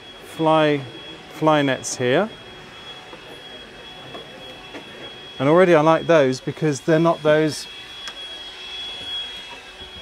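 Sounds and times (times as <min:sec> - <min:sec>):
exhibition hall background hiss: 0:00.0 - 0:08.5
faint high whine: 0:00.0 - 0:10.0.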